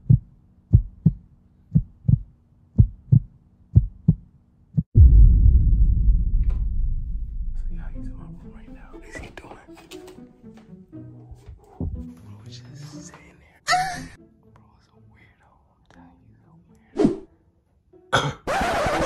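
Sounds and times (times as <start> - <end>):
heartbeat thumps: 0.0 - 9.0
deep boom: 4.9 - 8.4.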